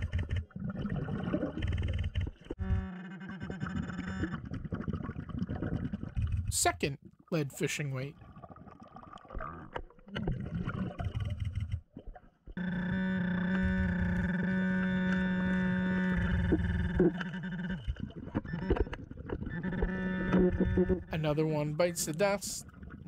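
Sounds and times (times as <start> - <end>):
metal detector buzzing tone: 12.6 - 17.2.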